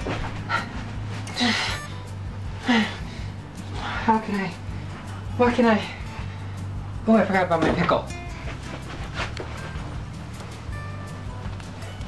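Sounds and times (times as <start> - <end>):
background music: 0.0 - 12.0
person breathing hard: 0.4 - 6.8.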